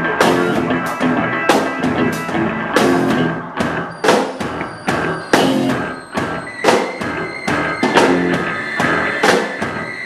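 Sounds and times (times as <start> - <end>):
electric bass: 0.0 - 6.5, 7.1 - 9.0
drum kit: 0.0 - 10.0
electric guitar: 0.0 - 10.0.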